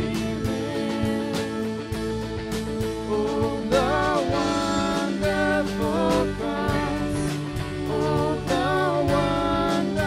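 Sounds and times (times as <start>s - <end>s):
person singing: 0.0s - 2.2s, 3.0s - 10.0s
bass guitar: 0.0s - 10.0s
drums: 0.0s - 10.0s
electric guitar: 0.0s - 10.0s
keyboard: 0.0s - 10.0s.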